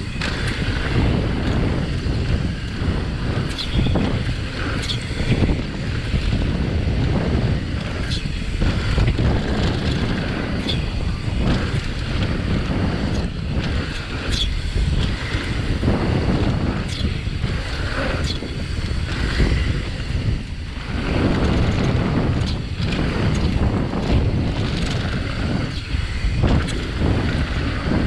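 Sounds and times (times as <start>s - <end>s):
bike clicks and rattles: 0.0s - 28.0s
bike tyres rolling on dirt: 0.0s - 28.0s
wind rushing over microphone: 0.0s - 28.0s.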